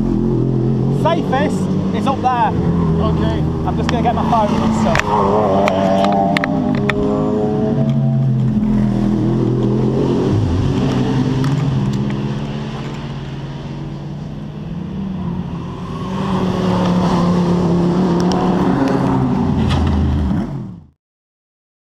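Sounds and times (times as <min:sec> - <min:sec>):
race car engines passing: 0:00.0 - 0:20.8.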